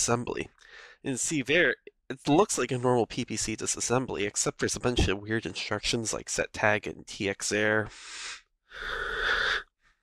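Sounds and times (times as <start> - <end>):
person exhaling into microphone: 7.9 - 9.6.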